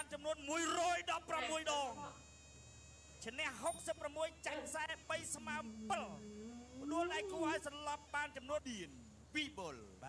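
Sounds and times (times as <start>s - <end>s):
faint high-pitched whine: 0.0s - 10.0s
person speaking: 0.7s - 2.1s.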